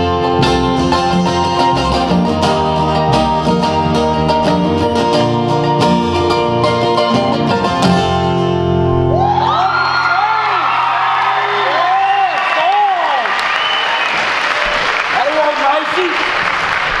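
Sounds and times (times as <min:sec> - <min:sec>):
bluegrass band chord ringing: 0:00.0 - 0:09.2
audience applauding and cheering: 0:09.0 - 0:17.0.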